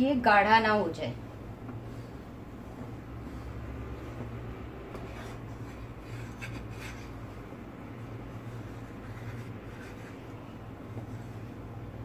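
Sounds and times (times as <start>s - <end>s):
steady low hum: 0.0s - 12.0s
wooden spatula scraping a pan: 5.0s - 7.5s, 8.4s - 11.6s.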